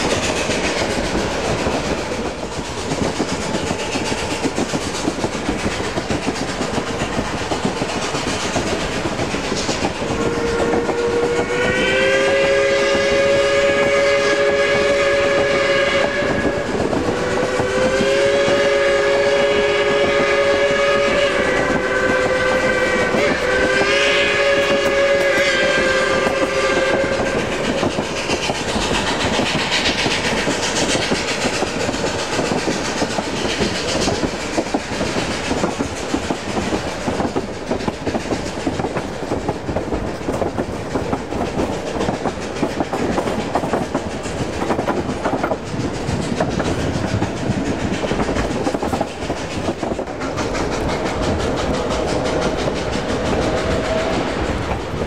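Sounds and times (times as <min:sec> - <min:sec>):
train wheels clattering on rail joints: 0:00.0 - 0:55.0
steam whistle blasts: 0:10.1 - 0:27.8.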